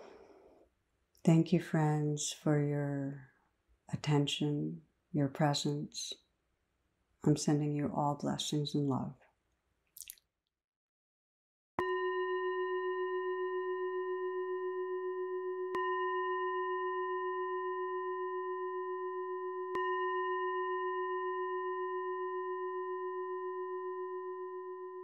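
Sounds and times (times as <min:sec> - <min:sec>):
singing bowl ringing: 0:11.8 - 0:25.0.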